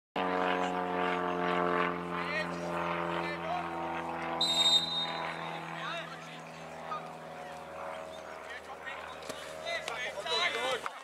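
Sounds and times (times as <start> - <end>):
steady low hum: 0.2 - 10.5.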